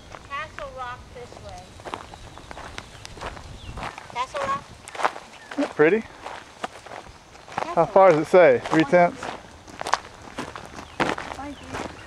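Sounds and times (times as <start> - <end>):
footsteps on rocky ground: 0.0 - 12.0.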